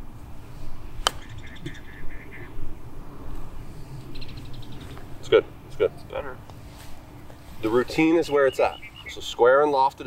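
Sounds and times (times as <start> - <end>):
birds chirping: 0.8 - 10.0
golf club hitting ball: 1.0 - 1.8.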